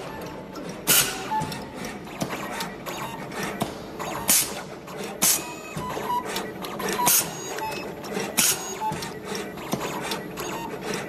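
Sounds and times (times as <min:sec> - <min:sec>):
machine mechanical whirr: 0:00.0 - 0:11.0.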